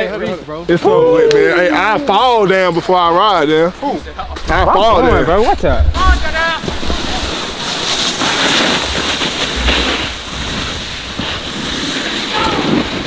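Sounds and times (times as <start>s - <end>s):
snowboard scraping over snow: 3.3s - 13.0s
low rumble: 4.0s - 7.6s, 8.8s - 11.6s
wind on microphone: 4.1s - 13.0s.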